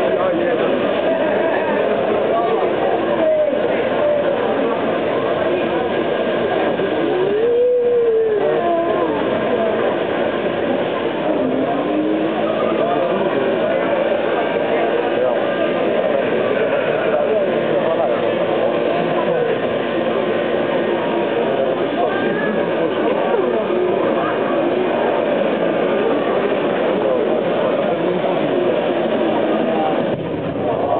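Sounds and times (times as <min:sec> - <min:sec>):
car engine at high revs: 0:05.9 - 0:07.4, 0:08.3 - 0:13.9.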